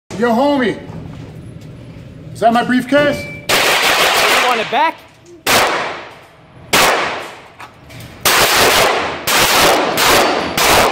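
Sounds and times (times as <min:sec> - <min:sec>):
pistol shots echoing indoors: 0:03.5 - 0:04.7, 0:05.4 - 0:07.5, 0:08.2 - 0:10.9.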